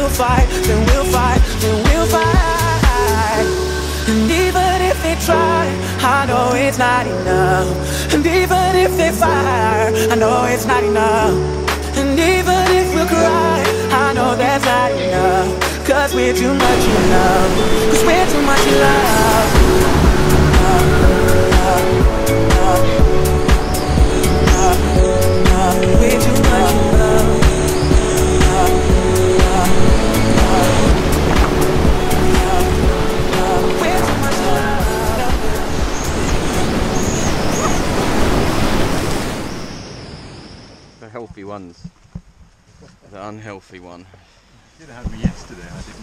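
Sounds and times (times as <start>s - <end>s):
pop song with drums and bass: 0.0s - 37.2s
whitewater rapid rushing: 11.6s - 39.8s.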